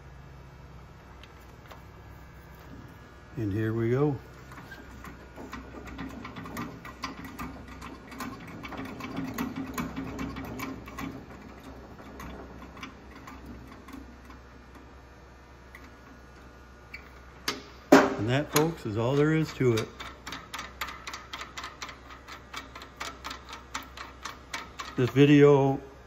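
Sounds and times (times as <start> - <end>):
irregular clicks and ticks: 18.6 - 25.3.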